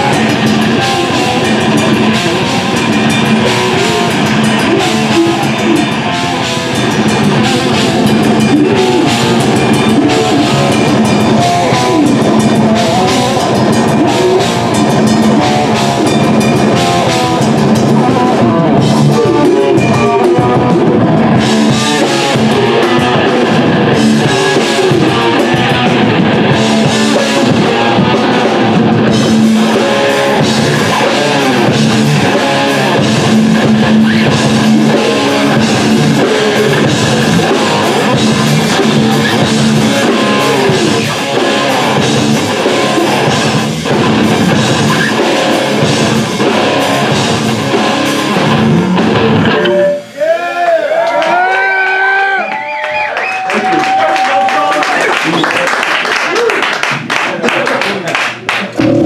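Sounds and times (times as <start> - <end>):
metal band playing live: 0.0 - 52.5, 56.8 - 59.0
distorted electric guitars: 0.0 - 59.0
pounding drum kit: 0.0 - 59.0.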